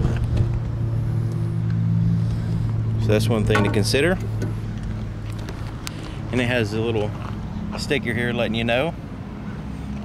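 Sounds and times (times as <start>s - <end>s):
vehicle engine idling: 0.1s - 10.0s.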